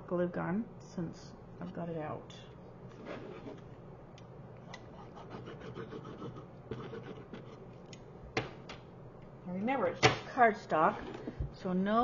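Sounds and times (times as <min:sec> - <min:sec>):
cardstock rubbing and scratching: 0:05.0 - 0:07.6.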